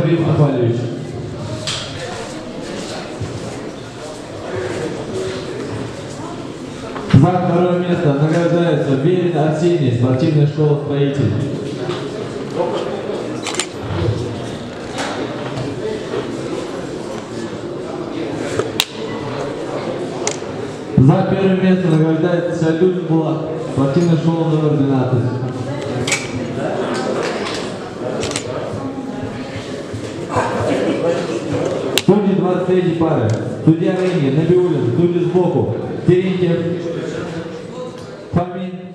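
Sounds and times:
indistinct chatter in a hall: 0:00.0 - 0:38.9.

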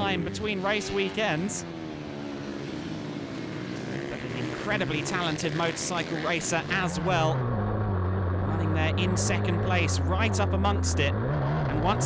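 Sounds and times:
motorcycle engines racing: 0:00.0 - 0:12.0.

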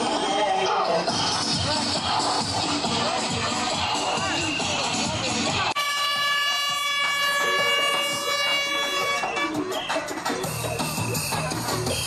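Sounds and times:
dance music over loudspeakers: 0:00.0 - 0:12.0.

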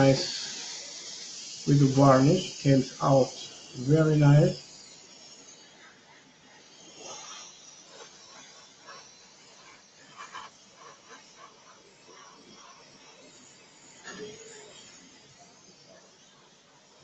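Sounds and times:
airbrush spraying hiss: 0:00.0 - 0:17.0.

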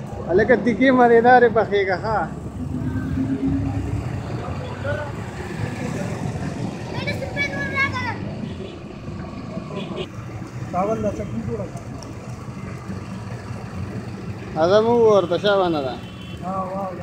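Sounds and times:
low engine rumble: 0:00.0 - 0:06.8.

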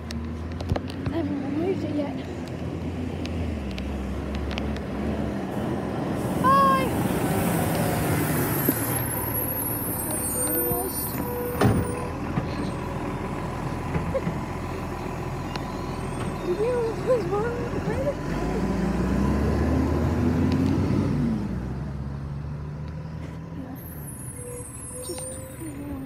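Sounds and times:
garbage truck diesel engine: 0:00.0 - 0:26.0.

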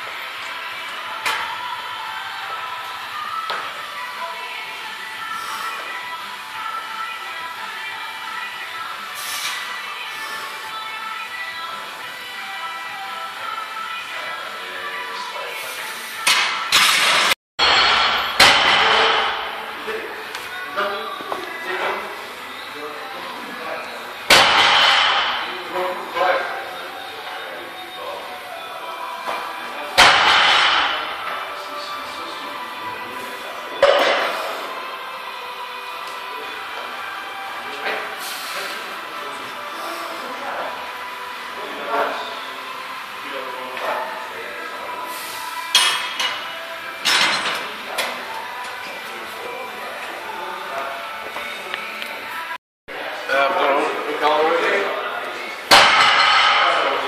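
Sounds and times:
loud sharp metal bangs: 0:16.4 - 0:19.7, 0:24.3 - 0:25.5, 0:30.0 - 0:31.2, 0:55.7 - 0:56.8
gym chatter: 0:17.8 - 0:57.0.

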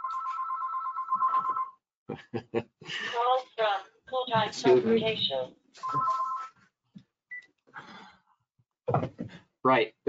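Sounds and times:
phone beep: 0:00.0 - 0:01.8, 0:04.3 - 0:06.6
man speaking: 0:04.4 - 0:05.2
breathy sound: 0:07.7 - 0:08.3.

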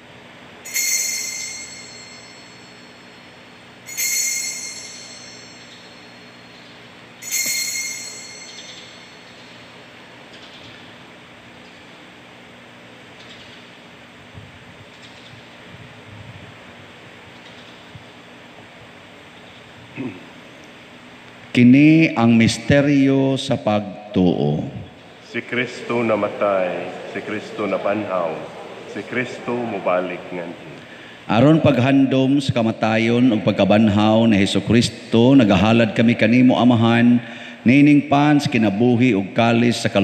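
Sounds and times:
altar bells ringing: 0:00.6 - 0:09.9.

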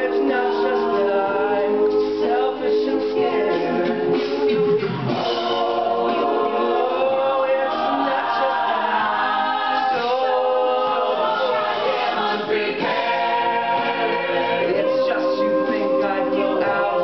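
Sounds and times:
a cappella group singing harmony: 0:00.0 - 0:17.0.

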